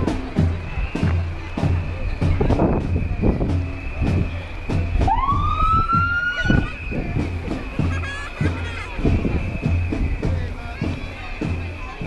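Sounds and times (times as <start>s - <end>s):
marching band drum beat: 0.0s - 12.0s
emergency siren rising: 4.9s - 6.8s.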